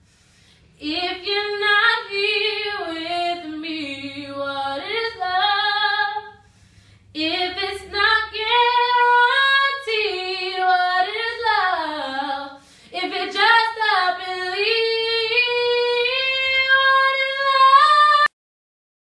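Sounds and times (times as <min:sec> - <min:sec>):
woman singing a cappella: 0:00.8 - 0:18.4.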